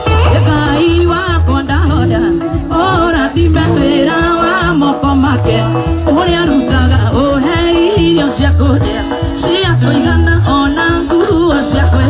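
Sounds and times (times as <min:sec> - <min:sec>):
lead singer wavering melody: 0:00.0 - 0:12.0
live band music: 0:00.0 - 0:12.0
pulsing bass line: 0:00.0 - 0:12.0.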